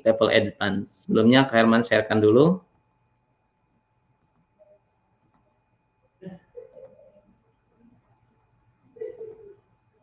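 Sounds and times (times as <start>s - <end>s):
computer mouse clicks: 2.6s - 2.9s, 4.2s - 4.5s, 5.2s - 5.5s, 9.2s - 9.5s.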